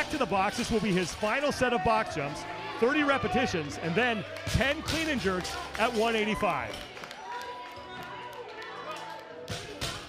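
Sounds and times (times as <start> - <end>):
crowd voices: 0.0 - 10.0
gym music: 0.0 - 10.0.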